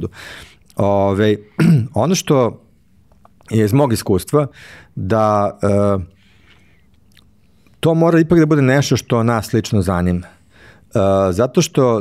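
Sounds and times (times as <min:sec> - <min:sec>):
man talking: 0:00.0 - 0:02.7, 0:03.4 - 0:06.2, 0:07.8 - 0:12.0
man clearing throat: 0:01.5 - 0:02.0.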